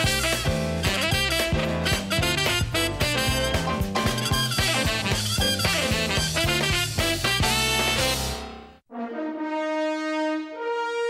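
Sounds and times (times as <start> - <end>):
brass fanfare: 0.0 - 11.0.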